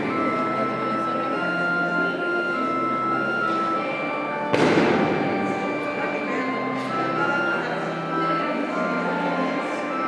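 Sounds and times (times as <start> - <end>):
loud ringing bang: 4.5 - 5.7.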